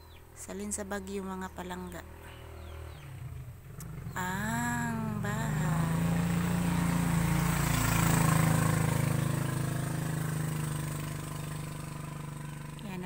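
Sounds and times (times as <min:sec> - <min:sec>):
small engine running: 0:02.0 - 0:13.0.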